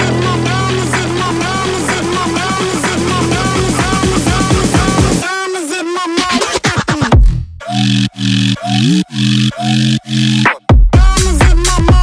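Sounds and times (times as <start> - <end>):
synth bass note: 0.0 - 5.2, 7.6 - 10.4.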